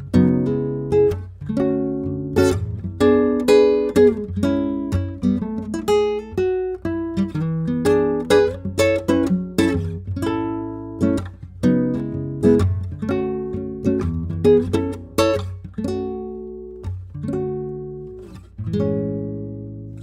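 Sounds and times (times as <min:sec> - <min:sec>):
classical guitar fingerstyle: 0:00.0 - 0:20.0.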